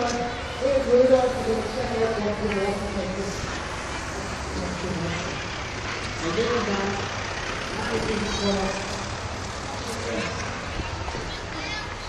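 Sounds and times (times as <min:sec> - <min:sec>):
people's voices: 0:00.0 - 0:12.0
traffic rumble: 0:00.0 - 0:12.0.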